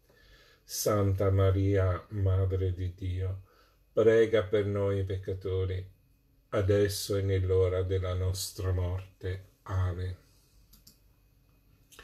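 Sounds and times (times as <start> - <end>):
person speaking: 0.6 - 11.0
faint light clicks: 10.7 - 11.1.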